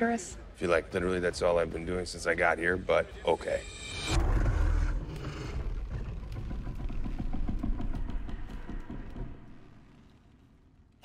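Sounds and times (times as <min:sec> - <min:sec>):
low rumble: 0:00.6 - 0:11.0.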